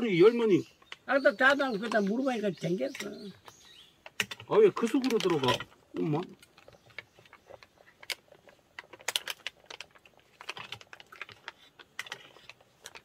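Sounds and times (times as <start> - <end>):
plastic bag crinkling: 4.2 - 13.0.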